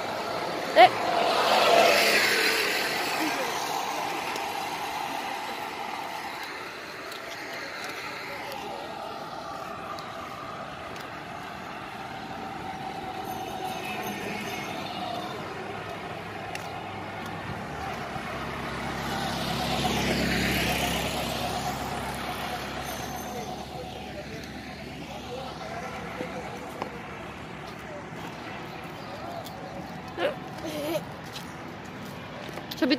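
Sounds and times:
motor vehicle passing close: 0.0s - 28.1s
road traffic noise: 0.0s - 32.9s.

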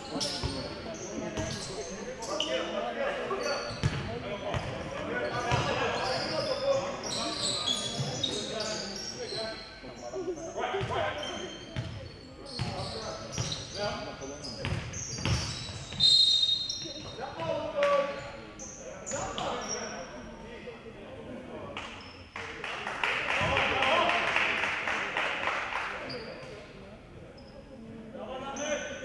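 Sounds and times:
sneakers squeaking: 0.0s - 20.2s, 26.0s - 26.7s, 27.3s - 27.7s.

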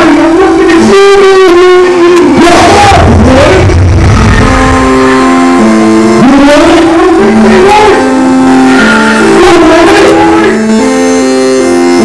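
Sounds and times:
rapper's voice through pa: 0.0s - 5.0s, 5.7s - 11.0s
hip-hop backing beat: 2.2s - 12.0s.

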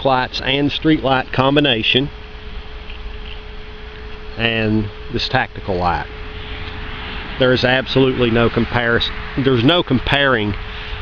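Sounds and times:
faint steady hum: 0.0s - 11.0s
low rumble: 5.0s - 10.7s.

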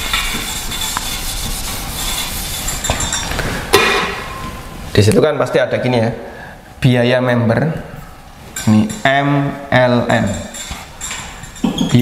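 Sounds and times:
eraser scrubbing whiteboard: 0.0s - 3.0s
loud knock: 3.7s - 4.3s.

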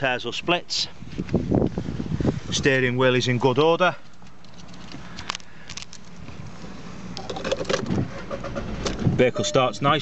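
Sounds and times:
diesel engine cranking and starting: 7.1s - 10.0s.

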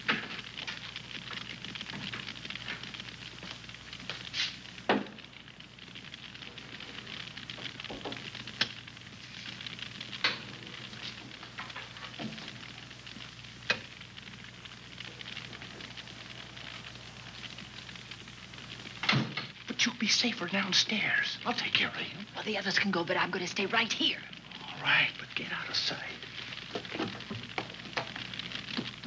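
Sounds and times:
film soundtrack hiss: 0.0s - 29.0s
low hum: 4.7s - 29.0s.

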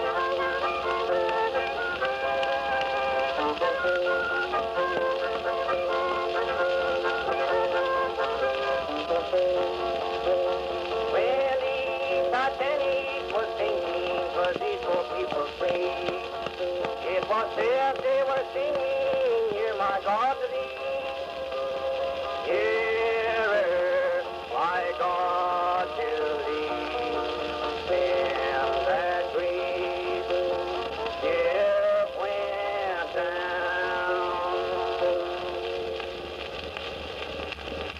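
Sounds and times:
instrumental country music on phonograph: 0.0s - 37.9s.

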